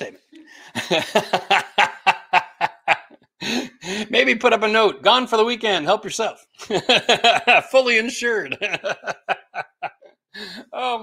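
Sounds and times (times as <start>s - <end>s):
man laughing: 0.5s - 4.0s, 6.6s - 11.0s
breathy gasp: 3.4s - 4.1s, 10.4s - 10.8s.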